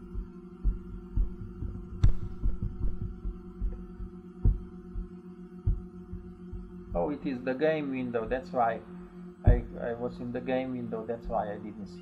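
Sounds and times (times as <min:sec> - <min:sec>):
low electrical hum: 0:00.0 - 0:12.0
soft low thumps of handling: 0:09.5 - 0:09.8.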